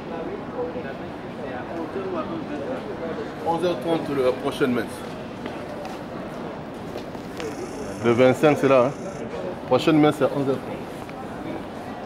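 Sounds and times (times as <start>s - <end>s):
murmur of distant voices: 0.0s - 12.0s
outdoor din: 7.0s - 9.4s.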